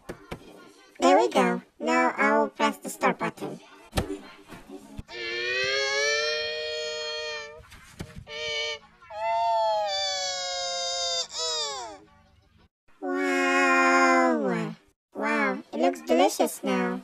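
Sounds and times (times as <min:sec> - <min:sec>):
distorted voice wailing: 0:05.1 - 0:07.7.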